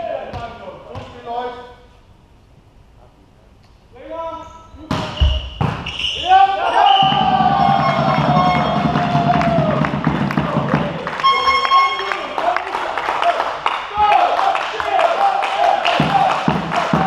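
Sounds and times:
players shouting: 0:06.2 - 0:17.0
clapping and stamping: 0:07.9 - 0:17.0.

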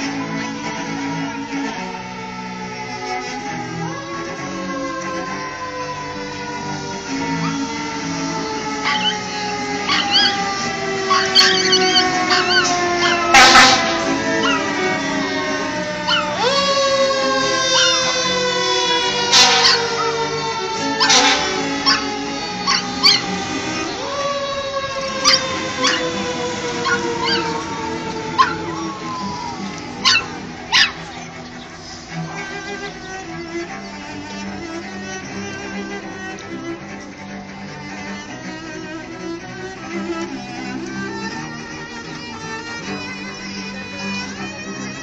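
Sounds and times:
cello quartet playing: 0:00.0 - 0:45.0
wailing tone falling in pitch: 0:03.5 - 0:31.6
short high yelps: 0:08.8 - 0:09.2, 0:09.9 - 0:10.3.

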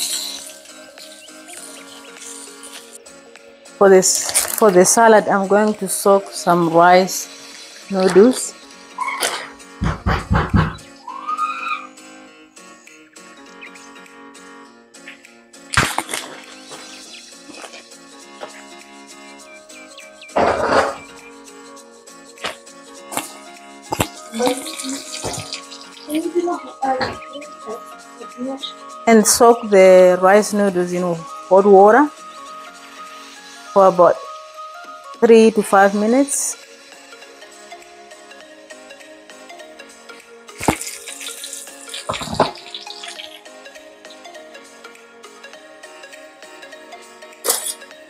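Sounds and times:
background music: 0:00.0 - 0:48.0
hot water pouring into bowl: 0:07.0 - 0:09.1, 0:40.6 - 0:43.4.

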